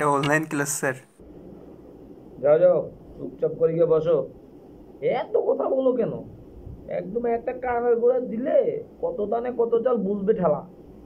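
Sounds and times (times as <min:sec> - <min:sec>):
man talking: 0:00.0 - 0:01.0.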